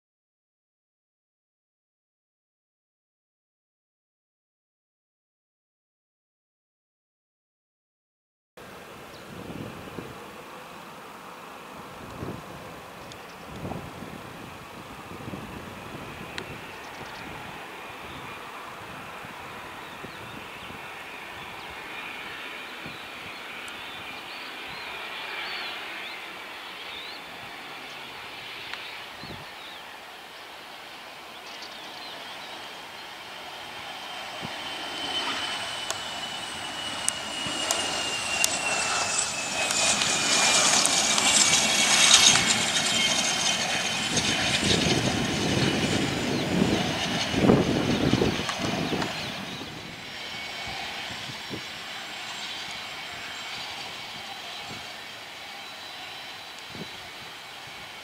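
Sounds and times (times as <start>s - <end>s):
jet engines whining: 8.6s - 58.0s.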